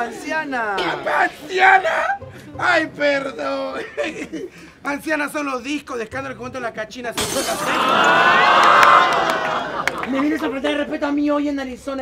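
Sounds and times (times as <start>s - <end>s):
audience laughing and shouting: 7.5s - 11.1s.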